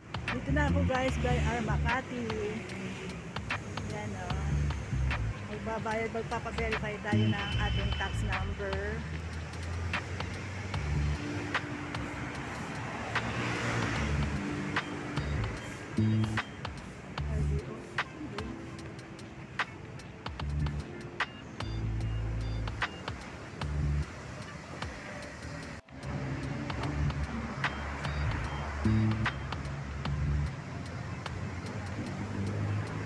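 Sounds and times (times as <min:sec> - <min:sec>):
low rumble of car engines: 0:00.0 - 0:33.0
steady traffic hum: 0:00.0 - 0:33.0
vehicle driving past: 0:09.0 - 0:16.3.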